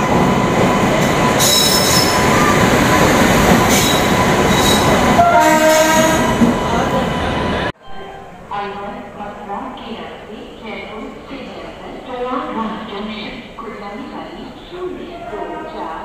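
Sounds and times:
train wheels rumbling on rails: 0.0s - 7.7s.

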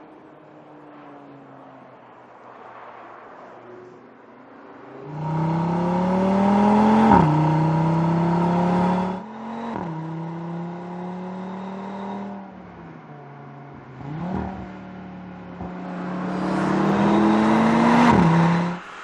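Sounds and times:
car engine accelerating: 4.8s - 19.0s
engine revving: 5.0s - 19.0s.

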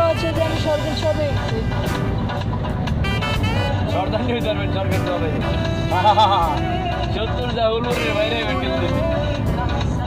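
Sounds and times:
song playing: 0.0s - 10.0s
vehicle engine and road rumble: 0.0s - 10.0s.

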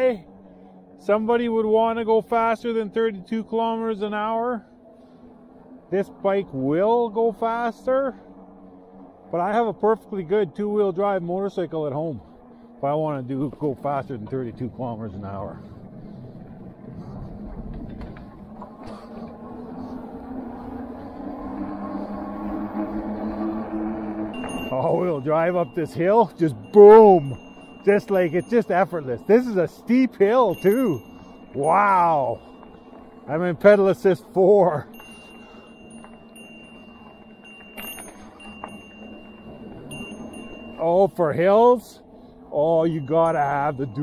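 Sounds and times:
electric bike motor hum: 0.0s - 44.0s
wind rumble on microphone: 13.5s - 24.7s.

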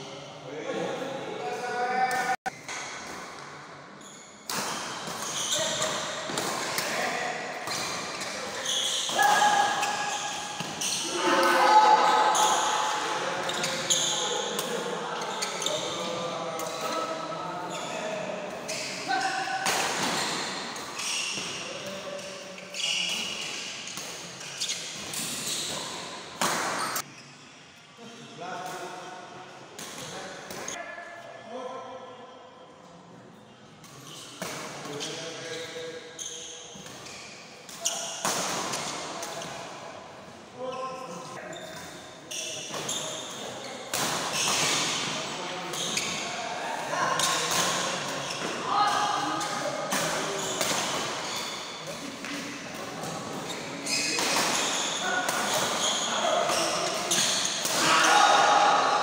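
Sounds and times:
racket hitting shuttlecock: 4.5s - 7.0s, 26.4s - 27.0s
spectators chatting and calling: 9.1s - 15.2s.

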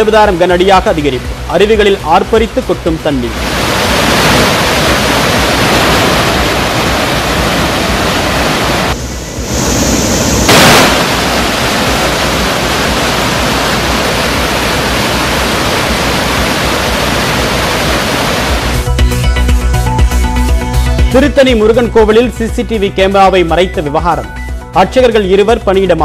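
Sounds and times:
roar of rushing water: 3.3s - 18.8s.

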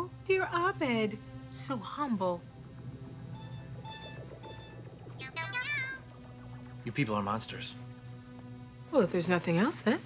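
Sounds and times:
steady low hum: 0.0s - 9.2s.

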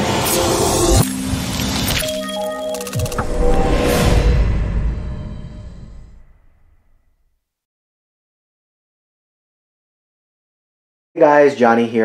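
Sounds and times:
sharp hit: 0.0s - 7.3s
whoosh: 2.8s - 7.2s.

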